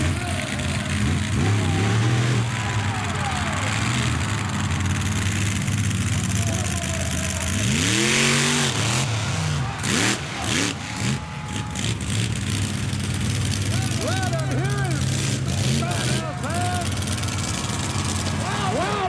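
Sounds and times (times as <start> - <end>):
monster truck engines running: 0.0 - 19.0.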